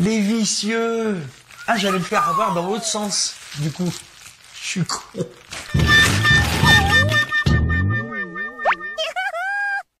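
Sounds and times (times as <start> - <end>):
squeaky tone: 5.7 - 9.2
cartoon boing tone: 6.7 - 9.0.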